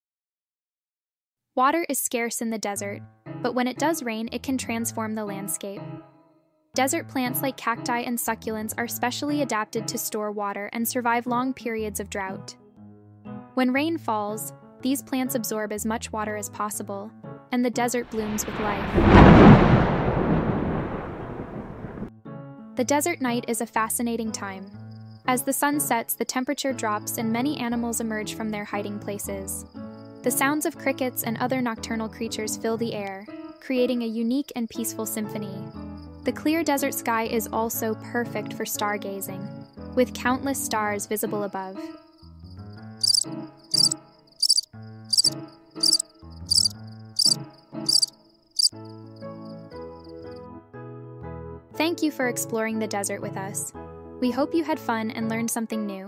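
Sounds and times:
thunder rumbling: 0:18.0 - 0:22.1
crickets chirping: 0:24.8 - 0:25.2, 0:42.2 - 0:50.1
thin high insect trill: 0:42.8 - 0:48.8.

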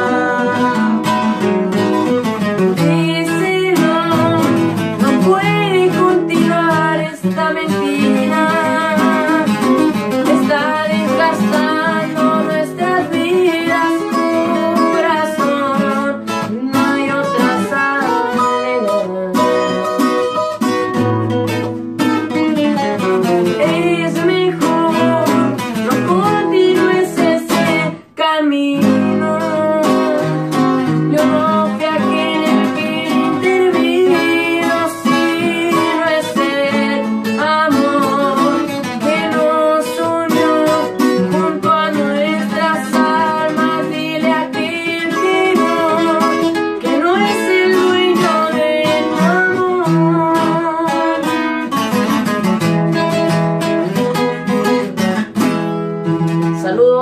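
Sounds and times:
acoustic guitars playing: 0:00.0 - 0:57.0.

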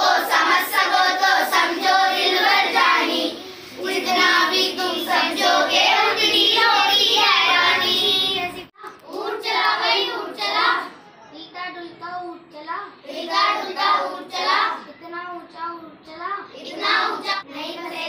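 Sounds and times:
child singing: 0:00.0 - 0:10.9, 0:16.5 - 0:18.0.

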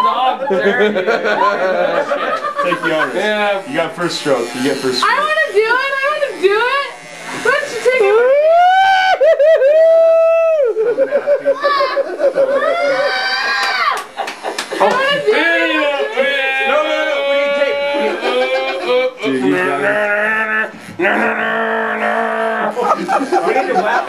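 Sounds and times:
long high-pitched yells: 0:08.0 - 0:10.7, 0:11.6 - 0:14.0
people shouting and whooping: 0:08.0 - 0:14.2, 0:14.8 - 0:24.0.

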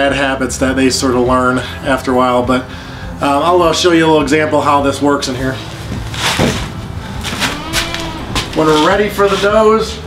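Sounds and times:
plastic crate shifting: 0:05.6 - 0:09.3
sandal footsteps on concrete: 0:05.6 - 0:09.6.

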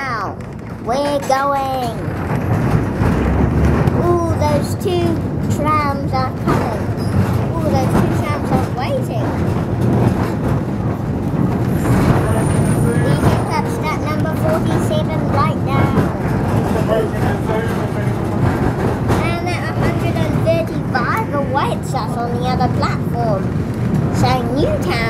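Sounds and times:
people talking: 0:00.0 - 0:02.0, 0:04.0 - 0:09.4, 0:11.8 - 0:23.5, 0:24.1 - 0:25.0
tram rumbling along track: 0:00.0 - 0:25.0.

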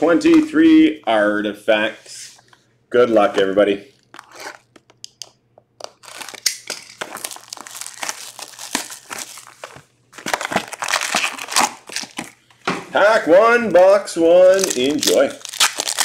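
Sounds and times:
plastic shrink wrap crinkling and tearing: 0:04.0 - 0:04.9, 0:05.8 - 0:12.5, 0:14.4 - 0:16.0.

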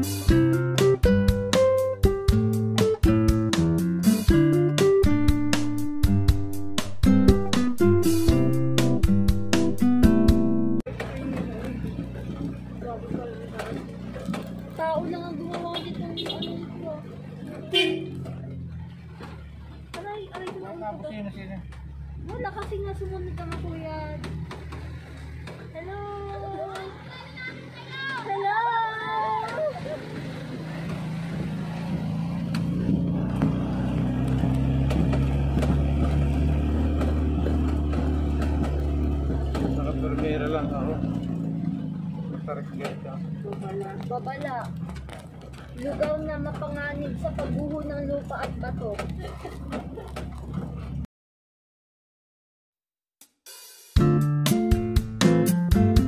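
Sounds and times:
car engine and road hum: 0:10.7 - 0:51.1.

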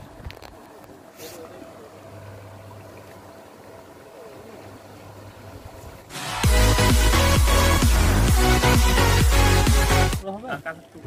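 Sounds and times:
moving water: 0:00.0 - 0:11.0
pond aerator electric hum: 0:00.0 - 0:11.0.

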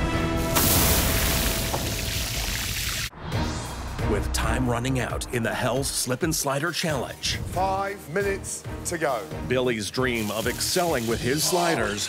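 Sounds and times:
burger patty sizzling: 0:00.4 - 0:03.1.

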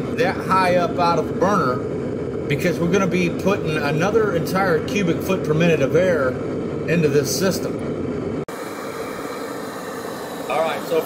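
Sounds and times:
burner flame roaring: 0:00.0 - 0:11.0.

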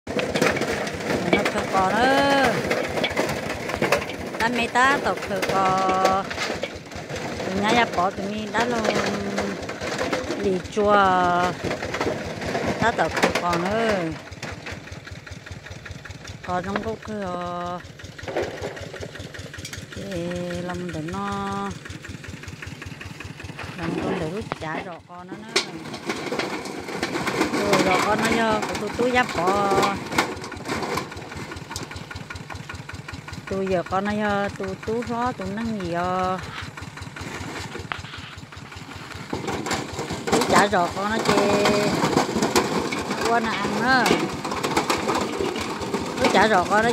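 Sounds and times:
small engine idling: 0:00.0 - 0:46.9.

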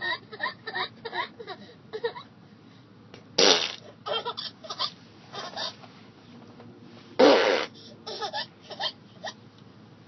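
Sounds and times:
loud fart noise: 0:03.4 - 0:03.8, 0:07.2 - 0:07.8.

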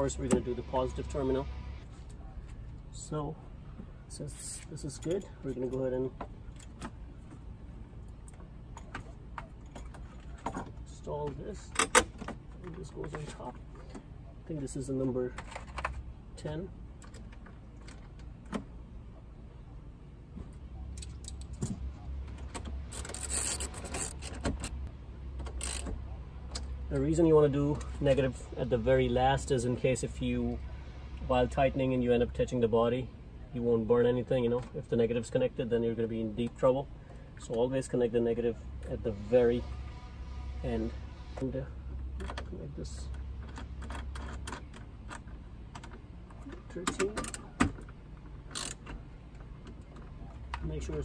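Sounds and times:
ratchet wrench clicking: 0:22.9 - 0:24.3, 0:25.6 - 0:25.9, 0:48.5 - 0:48.8.

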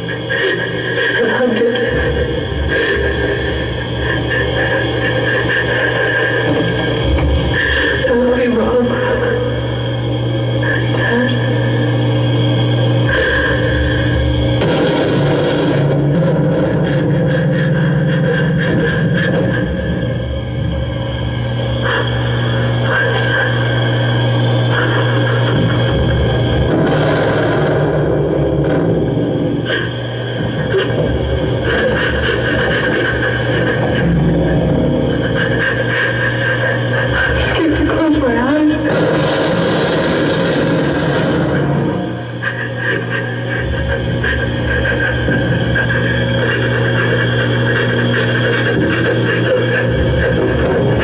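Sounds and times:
electronic noise drone: 0:00.0 - 0:51.0.

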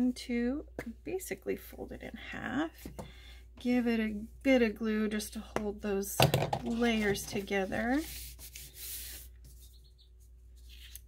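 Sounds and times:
hand rubbing paper: 0:06.9 - 0:09.8.

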